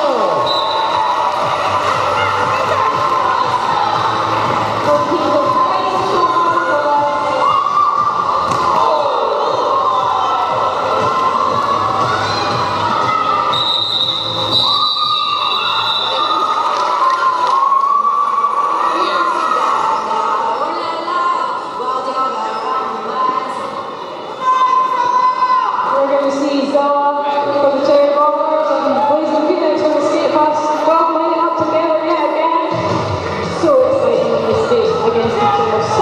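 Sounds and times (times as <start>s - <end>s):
background music: 0.0s - 15.9s
mix of voices: 0.0s - 36.0s.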